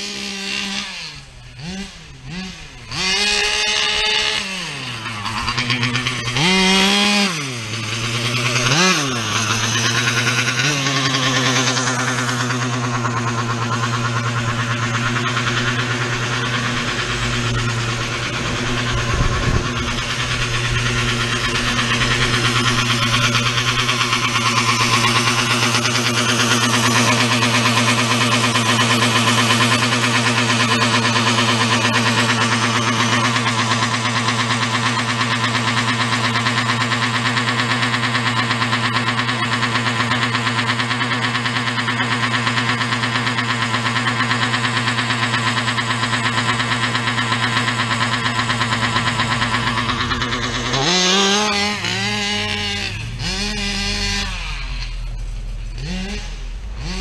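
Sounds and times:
two-stroke engine idling: 0.0s - 57.0s.

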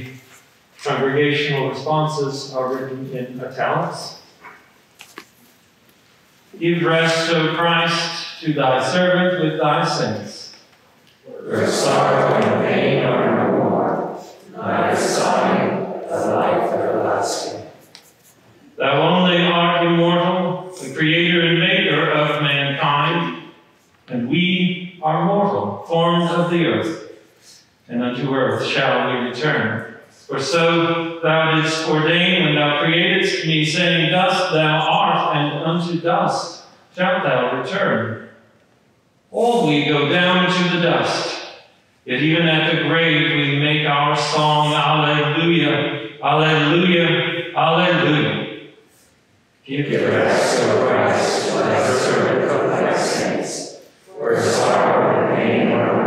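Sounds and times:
man chanting: 14.4s - 17.7s, 49.7s - 56.0s.

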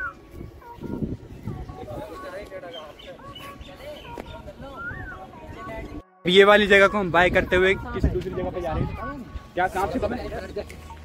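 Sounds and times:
birds chirping: 0.0s - 6.0s.

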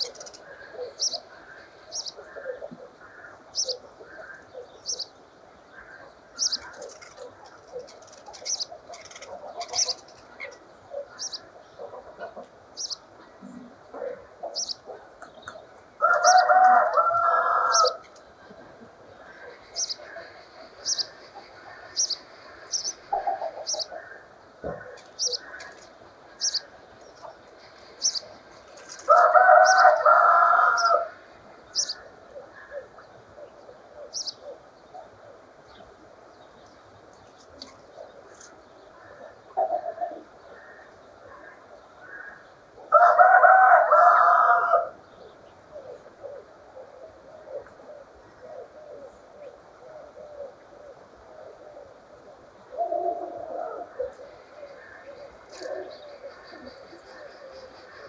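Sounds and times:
small birds chirping: 0.0s - 30.0s, 30.8s - 42.7s, 53.6s - 58.0s
birds twittering chatter: 0.0s - 42.8s, 44.9s - 58.0s
rooster crowing: 16.0s - 18.0s, 29.1s - 31.2s, 42.9s - 45.0s.

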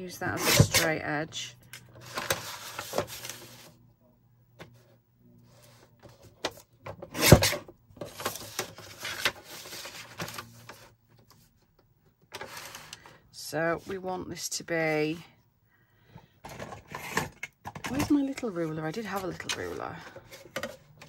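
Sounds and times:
paper rustling and sliding: 2.0s - 3.8s, 7.1s - 11.5s, 12.3s - 13.2s.

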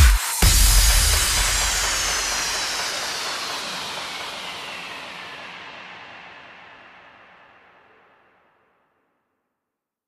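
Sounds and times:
white-noise sweep effect: 0.0s - 8.2s.

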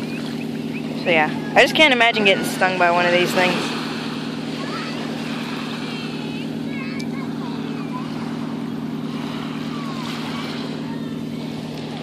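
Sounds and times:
low engine drone: 0.0s - 12.0s
surf: 0.0s - 12.0s
wind: 0.0s - 12.0s.

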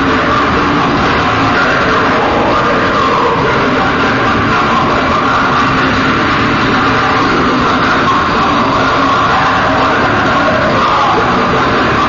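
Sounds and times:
drums: 0.0s - 12.0s
heavy metal band playing live: 0.0s - 12.0s.

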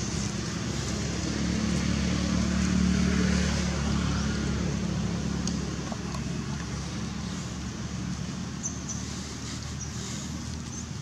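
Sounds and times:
vehicle engine humming: 0.0s - 11.0s.

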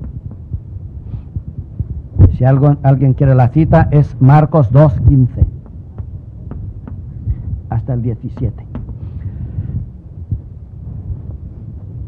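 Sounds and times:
low knocks and thuds: 0.0s - 2.4s, 5.0s - 12.0s
steady low hum: 0.0s - 12.0s.

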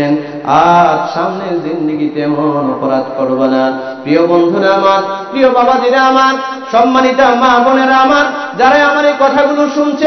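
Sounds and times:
man chanting a sermon over pa: 0.0s - 10.0s.

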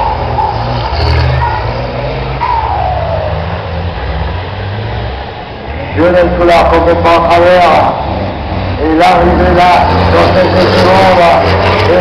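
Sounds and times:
truck engines rumbling: 0.0s - 12.0s.

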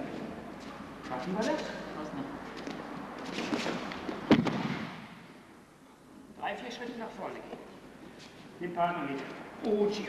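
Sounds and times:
body slapping onto mats: 2.6s - 5.2s.

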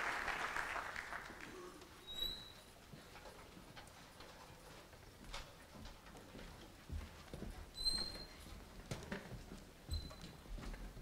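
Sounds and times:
footsteps: 1.8s - 11.0s
short high squeak: 2.0s - 2.7s.

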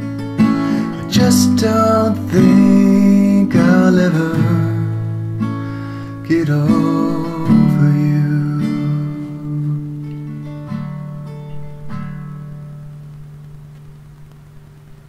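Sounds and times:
acoustic guitar chords and notes: 0.0s - 15.0s.

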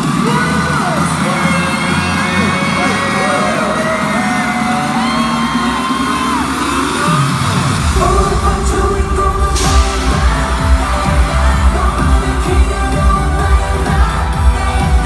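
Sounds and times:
fans screaming: 0.0s - 13.0s
heavy bass beat: 0.0s - 15.0s
pop music over loudspeakers: 0.0s - 15.0s.

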